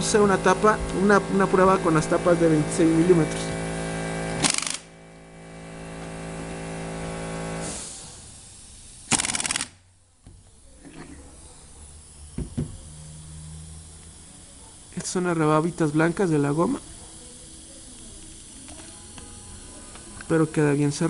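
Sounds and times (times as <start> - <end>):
pneumatic spindle humming: 0.0 - 21.0
short loud air hiss: 7.6 - 9.8.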